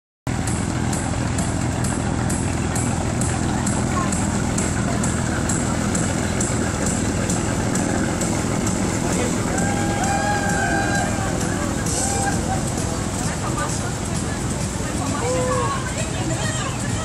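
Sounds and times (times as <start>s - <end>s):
fast high ticking: 0.3s - 17.0s
ship engine humming: 0.3s - 17.0s.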